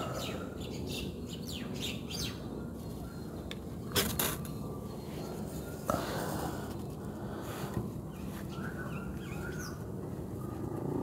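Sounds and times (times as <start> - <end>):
bird chirping: 0.0 - 5.9, 8.1 - 10.6.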